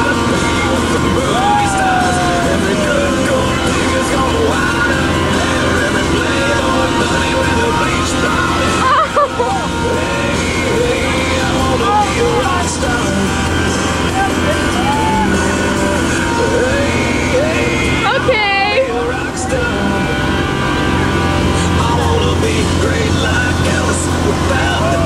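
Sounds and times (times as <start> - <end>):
boat engine droning: 0.0 - 25.0
song with singing voice: 0.0 - 25.0.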